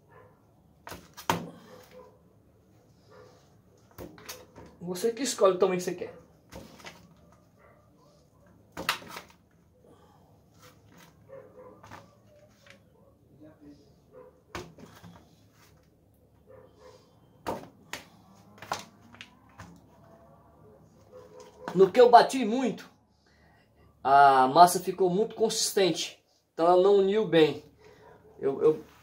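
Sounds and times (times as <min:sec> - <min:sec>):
soap blocks handled: 0:08.7 - 0:09.6.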